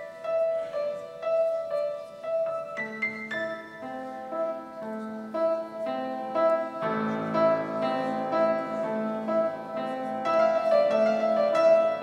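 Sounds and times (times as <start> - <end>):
piano-like keyboard music: 0.0 - 12.0.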